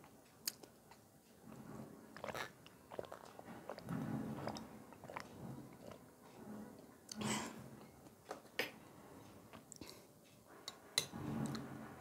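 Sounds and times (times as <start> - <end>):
swallowing: 1.4 - 8.2
person sipping water: 1.5 - 6.0.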